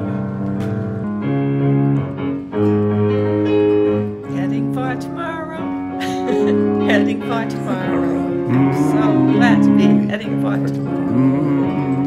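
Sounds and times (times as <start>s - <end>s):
keyboard playing sustained chords: 0.0s - 12.0s.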